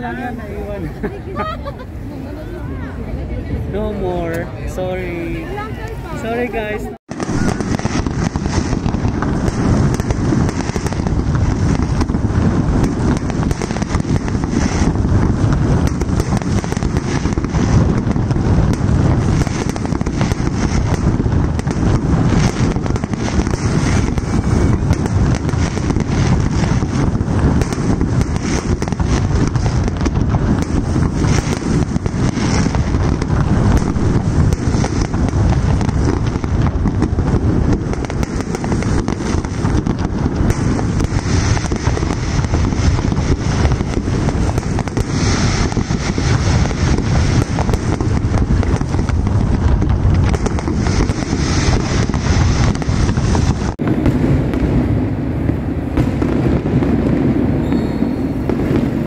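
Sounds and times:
fireworks bangs and crackles: 0.0 - 59.0.

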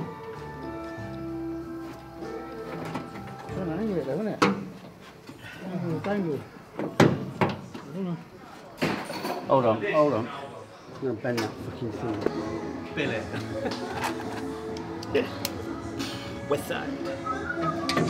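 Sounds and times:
background music held notes: 0.0 - 4.4, 11.8 - 18.0
indistinct voices: 10.6 - 18.0.

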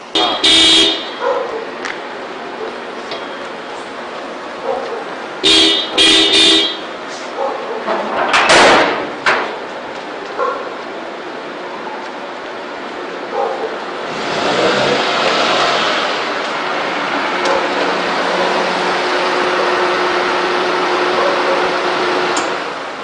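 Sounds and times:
car engine running: 0.1 - 7.0.

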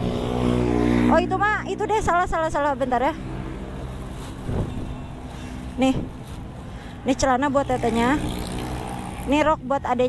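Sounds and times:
plastic bags rustling: 3.8 - 6.7.

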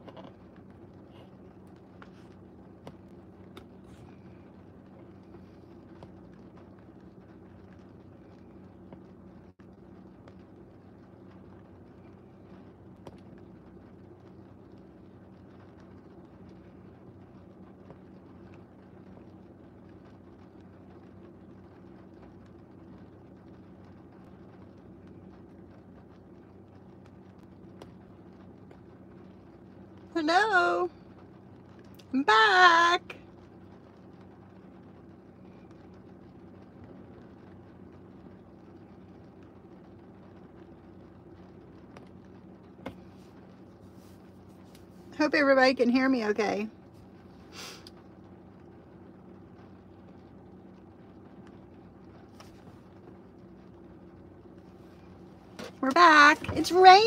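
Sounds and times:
faint low hum in car: 0.0 - 57.0.

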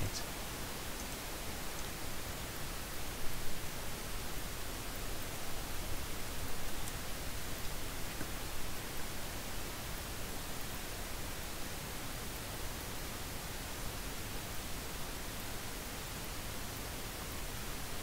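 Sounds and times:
microphone background hiss: 0.0 - 18.0.

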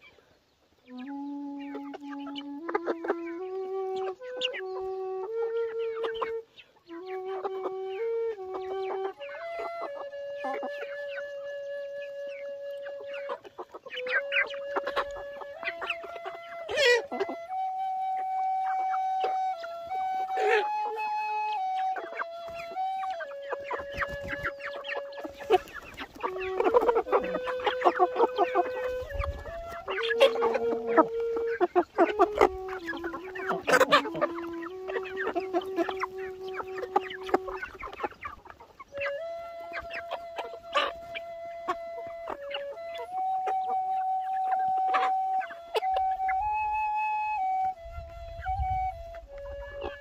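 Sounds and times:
hens clucking: 0.0 - 50.0
flute melody: 0.8 - 50.0.

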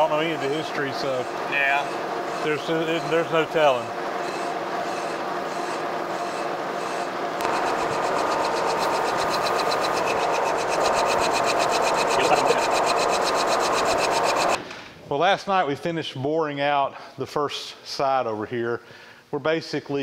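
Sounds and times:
boring mill machine whir: 0.0 - 14.6
rapid even ticking: 7.4 - 14.6.

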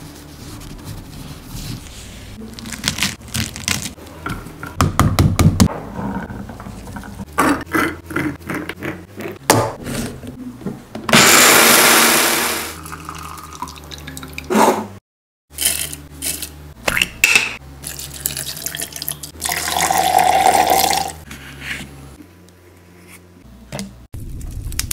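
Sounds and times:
pomegranate rind cracking: 2.5 - 4.0.

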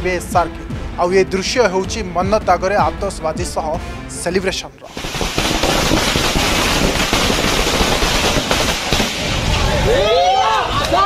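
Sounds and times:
firecrackers crackling: 4.9 - 10.2.

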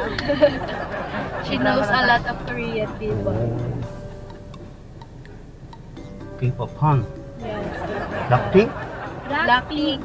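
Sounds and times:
soft light ticking: 4.0 - 6.0.

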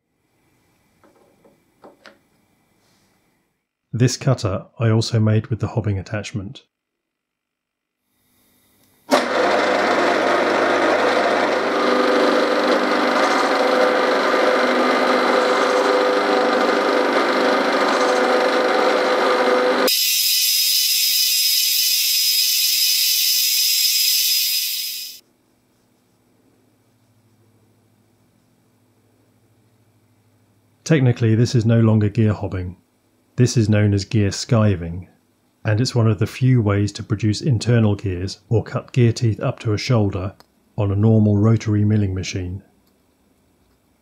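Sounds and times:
milling machine cutting plastic: 9.1 - 20.0.

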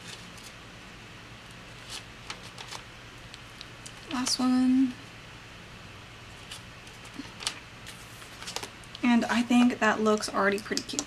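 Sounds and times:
low room hum: 0.0 - 11.0
paper and sticker tabs rustling: 6.4 - 8.7.

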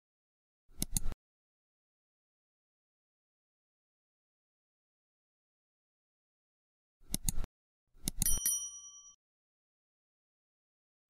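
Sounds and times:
mouse-style clicks: 0.7 - 1.2, 7.0 - 8.4
bright bell ding: 8.2 - 9.2.

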